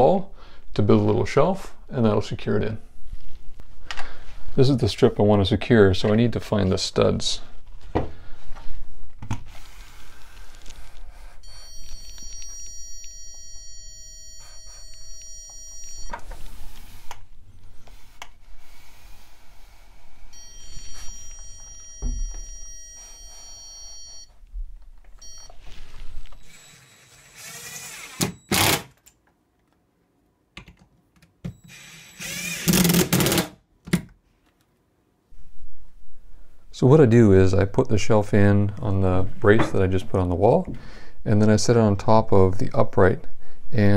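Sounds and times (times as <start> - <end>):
stud finder electronic tone: 11.1 - 17.6, 20.2 - 26.8.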